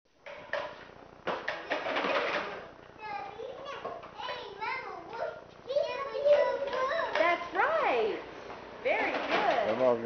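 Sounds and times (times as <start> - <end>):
clattering with sharp knocks: 0.2 - 2.6, 8.9 - 9.9.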